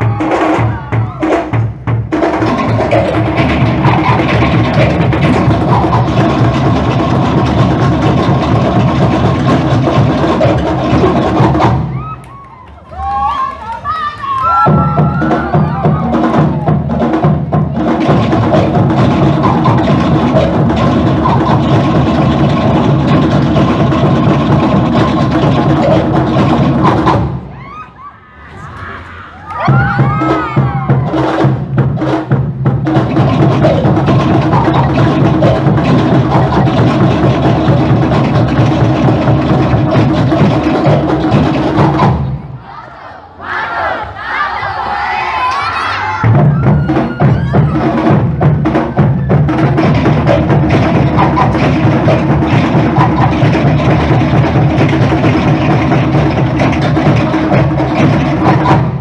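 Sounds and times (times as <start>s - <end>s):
shouts and cheering: 0.0s - 1.4s, 11.8s - 16.9s, 27.4s - 31.4s, 42.5s - 48.2s
fast drum ensemble rhythm: 0.0s - 12.1s, 14.5s - 27.6s, 29.6s - 42.6s, 46.1s - 59.0s.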